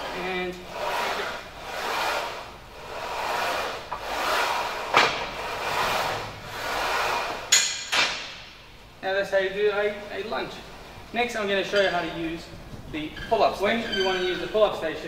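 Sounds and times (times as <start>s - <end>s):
bar carriage sliding on rods: 0.0s - 8.5s.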